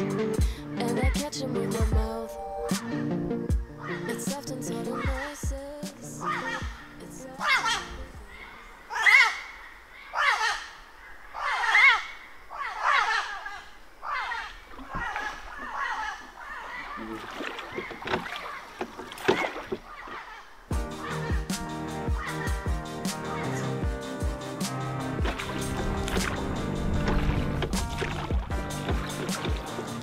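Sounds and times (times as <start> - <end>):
background music: 0.0 - 8.4, 20.7 - 30.0
bird squawking: 2.7 - 5.5, 6.1 - 26.8
splashes: 14.1 - 20.7, 25.0 - 30.0.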